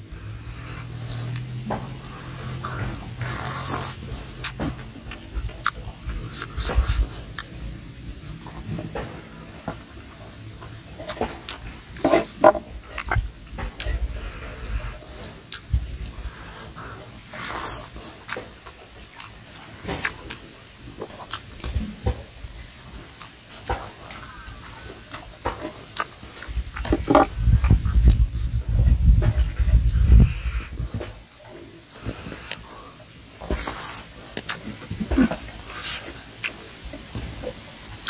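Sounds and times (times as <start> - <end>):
heavy low rumble: 0.0 - 23.2, 26.2 - 38.0
man chewing with lip smacks: 0.0 - 38.0
wet mouth clicks: 0.4 - 7.6, 11.0 - 37.6.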